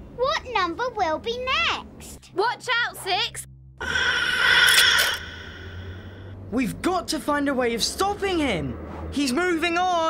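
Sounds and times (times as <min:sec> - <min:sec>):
comic suction whoosh: 0:03.8 - 0:06.3.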